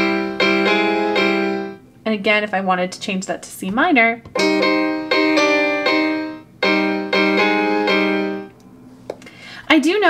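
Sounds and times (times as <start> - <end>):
electronic piano chords: 0.0 - 1.9, 4.3 - 8.6.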